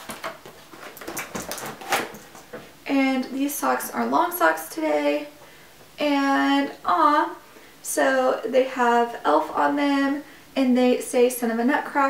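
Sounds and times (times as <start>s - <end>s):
packaging rustling and clicking: 0.0s - 2.6s.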